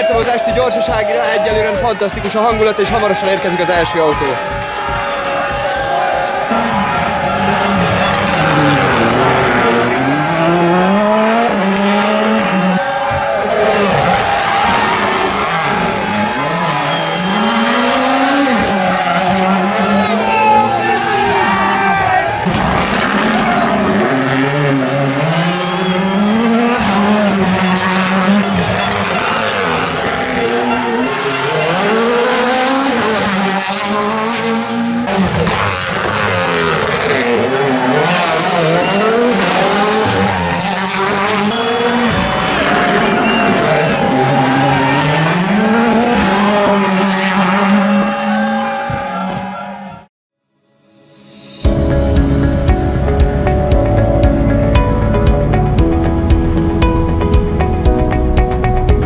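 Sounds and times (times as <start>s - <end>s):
tyres skidding: 0.0s - 49.9s
spectators shouting: 0.0s - 50.1s
rally car engine revving: 4.6s - 50.0s.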